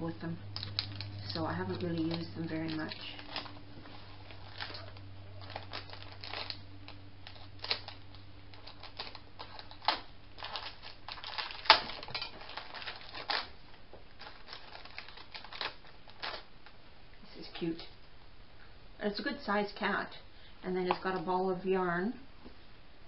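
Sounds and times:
plastic packet crinkling: 0:00.5 - 0:16.8.

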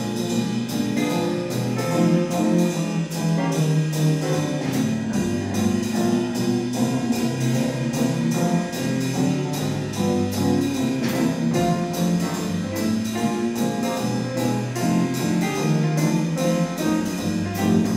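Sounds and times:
big band jazz: 0:00.0 - 0:17.9
cymbals swing beat: 0:00.0 - 0:17.9.

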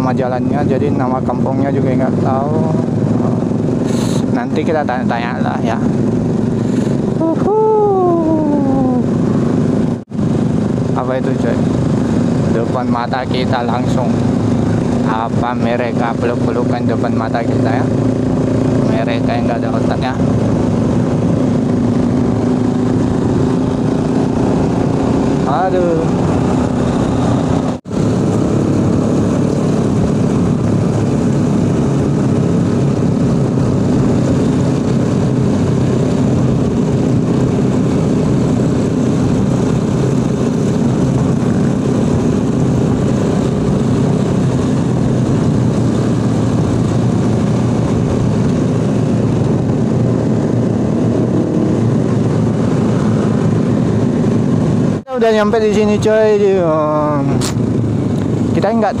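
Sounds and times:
wind and road noise: 0:00.0 - 0:59.0
scooter engine running: 0:02.0 - 0:55.1.

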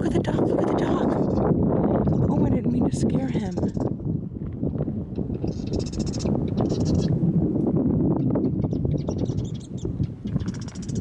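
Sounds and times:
wind rumble on microphone: 0:00.0 - 0:11.0
marsh birds calling: 0:05.2 - 0:07.2, 0:08.2 - 0:11.0.

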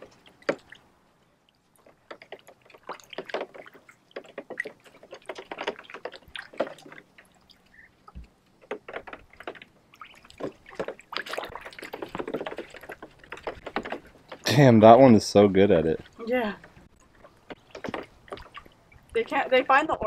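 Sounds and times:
ducks splashing in water: 0:00.0 - 0:01.0, 0:01.6 - 0:20.0.

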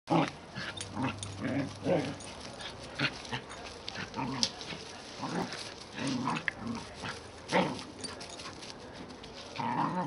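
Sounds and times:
dogs growling while play-fighting: 0:00.1 - 0:08.5, 0:09.5 - 0:10.0.

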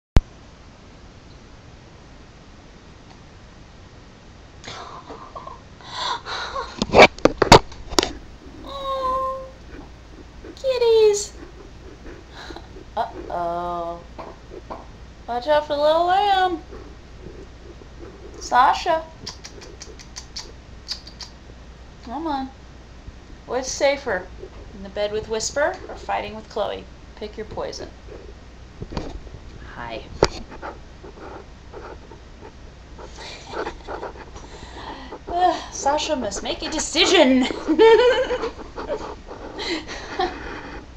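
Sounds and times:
pet making soft vocal sounds: 0:08.0 - 0:22.6, 0:23.6 - 0:28.5, 0:29.6 - 0:40.8.

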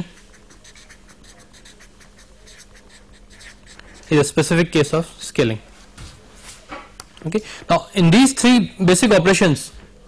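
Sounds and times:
pen scratching handwriting: 0:00.0 - 0:04.4.

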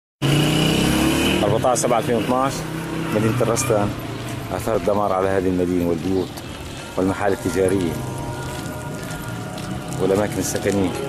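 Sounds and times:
engine hum: 0:00.2 - 0:11.0.

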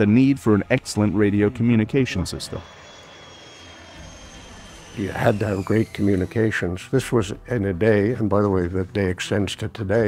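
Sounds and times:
jet aircraft flying low: 0:01.1 - 0:06.8
high engine whine falling in pitch: 0:01.4 - 0:06.8.

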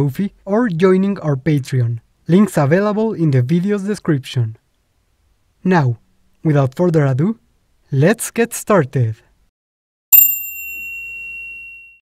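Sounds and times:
bell ding: 0:10.1 - 0:12.0.

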